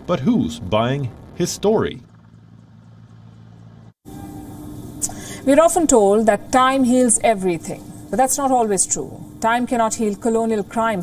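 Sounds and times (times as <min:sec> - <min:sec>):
helicopter hovering: 0:00.0 - 0:11.0.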